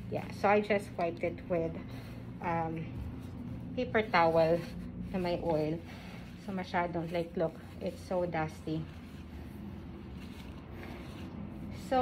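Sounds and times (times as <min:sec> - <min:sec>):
low room hum: 0:00.0 - 0:12.0
paper towel wiping leaves: 0:00.1 - 0:12.0.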